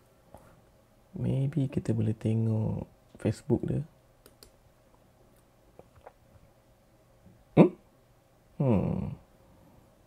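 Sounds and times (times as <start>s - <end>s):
computer mouse clicks: 4.2s - 4.6s
short vocal sound: 7.5s - 7.9s, 8.6s - 9.3s.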